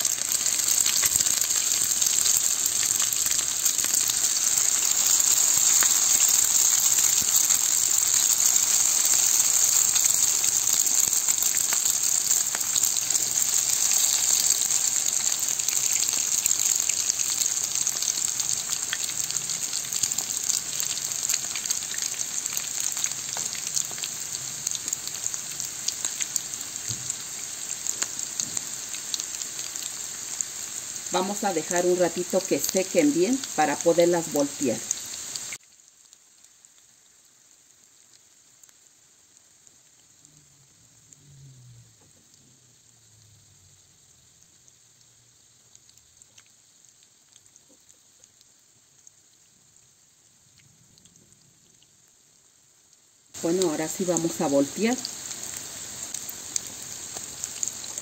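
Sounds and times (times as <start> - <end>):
batter sizzling in a frying pan: 0.0 - 58.0.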